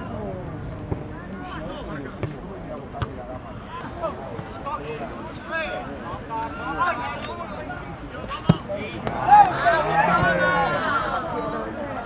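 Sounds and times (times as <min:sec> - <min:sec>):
players and spectators shouting: 0:00.0 - 0:12.0.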